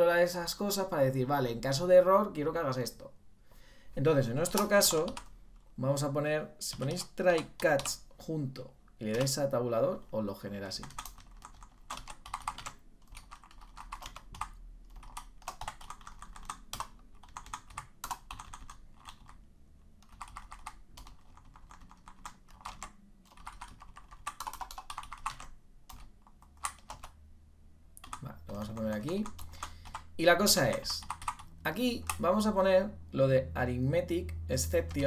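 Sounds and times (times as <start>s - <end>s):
computer keyboard typing: 4.3s - 5.7s, 6.7s - 8.2s, 9.0s - 9.4s, 10.7s - 19.4s, 20.0s - 27.2s, 28.0s - 32.4s, 34.8s - 35.0s.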